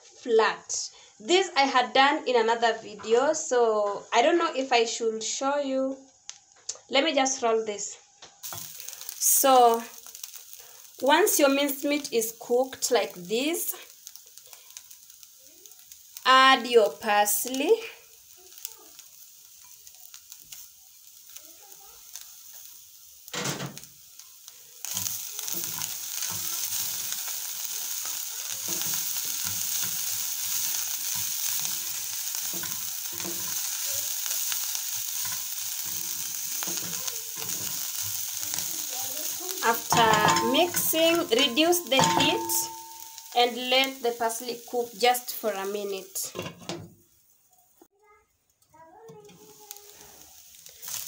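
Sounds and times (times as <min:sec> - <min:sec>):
meat sizzling in a pan: 0:08.4 - 0:47.8, 0:48.8 - 0:51.0
wooden spoon scraping a pan: 0:24.9 - 0:46.8.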